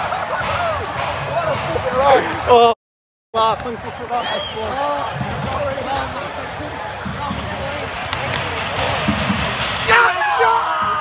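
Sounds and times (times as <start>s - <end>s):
excited voices celebrating: 9.8s - 11.0s.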